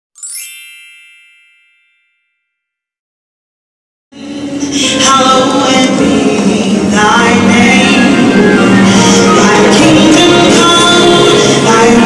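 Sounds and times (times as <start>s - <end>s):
bright chime ding: 0.2s - 2.4s.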